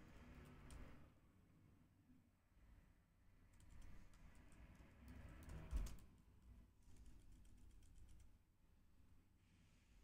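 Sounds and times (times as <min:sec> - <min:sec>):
faint keyboard typing: 0:00.1 - 0:01.0, 0:03.4 - 0:08.4.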